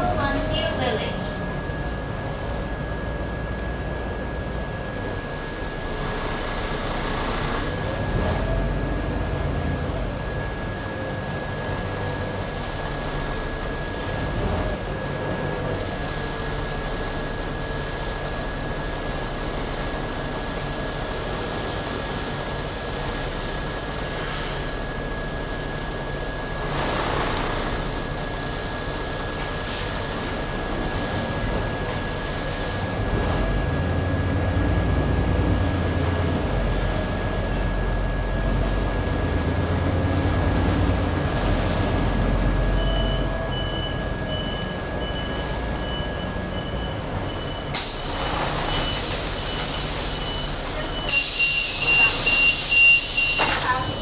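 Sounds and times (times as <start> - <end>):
bus engine running: 0.0 - 54.0
short high beeps: 50.2 - 54.0.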